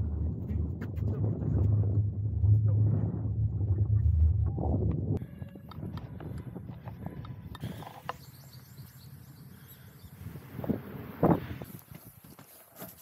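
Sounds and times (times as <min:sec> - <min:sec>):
wind rumble on microphone: 0:00.0 - 0:12.5.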